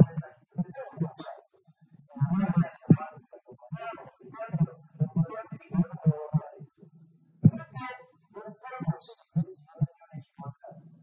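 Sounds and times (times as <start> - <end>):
man speaking into a microphone: 0.0 - 1.4.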